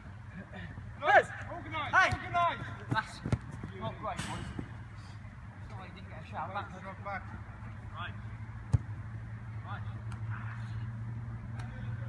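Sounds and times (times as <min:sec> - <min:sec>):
players calling out: 0:00.4 - 0:05.2.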